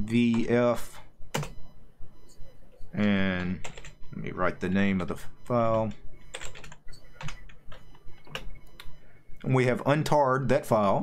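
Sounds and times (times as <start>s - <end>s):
keyboard typing: 2.3s - 4.0s, 5.7s - 9.0s.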